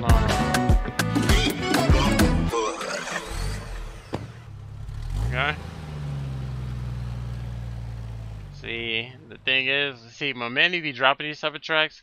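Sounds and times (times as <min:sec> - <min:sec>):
music: 0:00.0 - 0:03.2
car engine revving and idling: 0:01.3 - 0:09.7.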